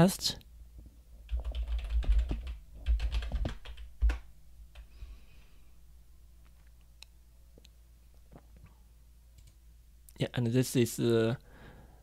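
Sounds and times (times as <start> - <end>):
computer keyboard typing: 1.3 - 4.9.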